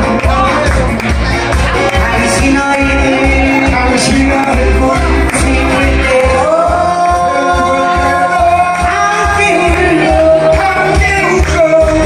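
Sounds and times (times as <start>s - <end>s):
band accompaniment with steady beat: 0.0s - 12.0s
person singing: 0.0s - 12.0s.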